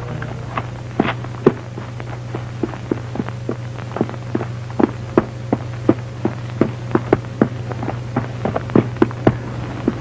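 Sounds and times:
steady low hum: 0:00.0 - 0:10.0
footsteps on dirt road: 0:00.5 - 0:10.0.

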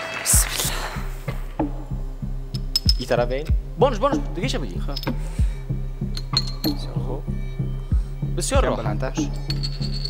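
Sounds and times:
background music with beat: 0:00.1 - 0:10.0
bottle caps clinking on glass: 0:02.6 - 0:03.1, 0:04.9 - 0:05.3, 0:06.1 - 0:06.9, 0:09.2 - 0:10.0.

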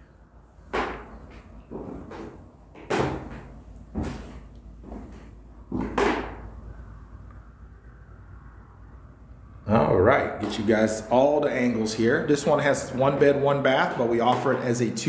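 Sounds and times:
footsteps on wooden floor: 0:00.7 - 0:06.4.

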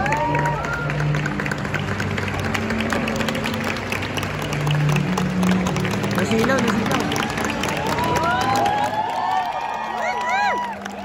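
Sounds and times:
crowd applause: 0:00.0 - 0:11.0.

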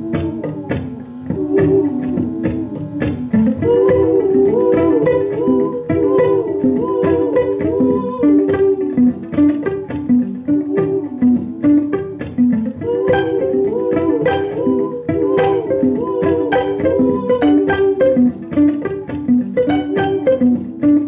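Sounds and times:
violin plucked pizzicato: 0:00.0 - 0:21.0.

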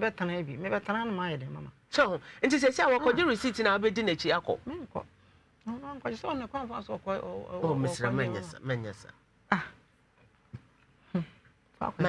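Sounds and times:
person making short vocal sounds: 0:11.1 - 0:11.4.

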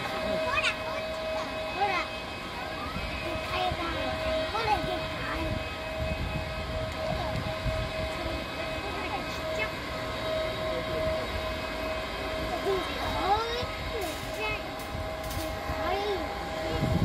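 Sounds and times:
jet engine high whine: 0:00.0 - 0:17.0.

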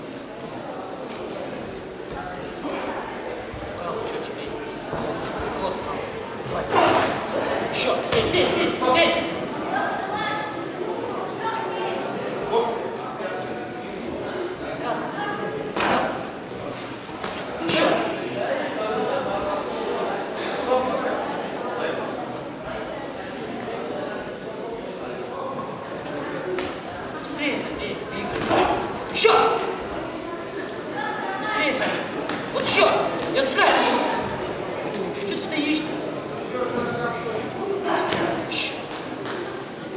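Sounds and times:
voices echoing in hall: 0:00.0 - 0:39.9.

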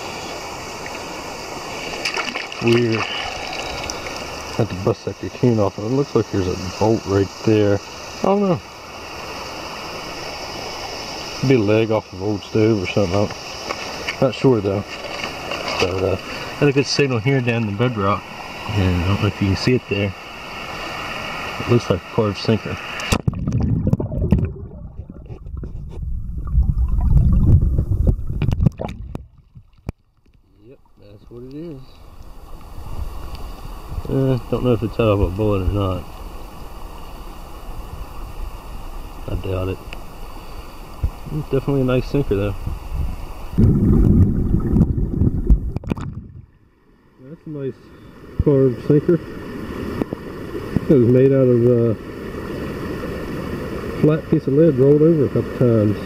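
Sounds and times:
underwater water churning and sloshing: 0:00.0 - 0:05.5, 0:22.6 - 0:34.0, 0:42.1 - 0:47.1, 0:48.2 - 0:54.0
shallow creek water running: 0:00.0 - 0:56.0
knocks and scrapes: 0:14.8 - 0:16.0, 0:24.3 - 0:26.2.

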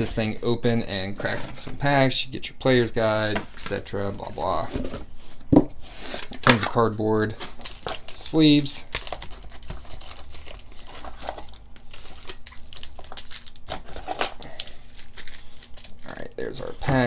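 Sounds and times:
foil packs crinkling: 0:06.1 - 0:17.0.

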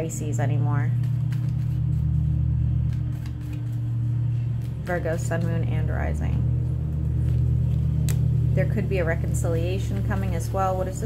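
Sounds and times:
steady low hum: 0:00.0 - 0:11.0
cards being shuffled: 0:00.9 - 0:05.7, 0:06.6 - 0:08.4.

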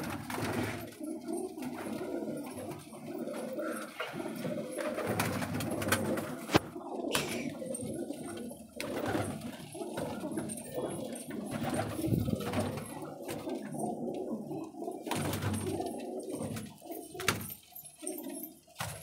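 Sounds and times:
pigeons cooing: 0:00.0 - 0:19.0.

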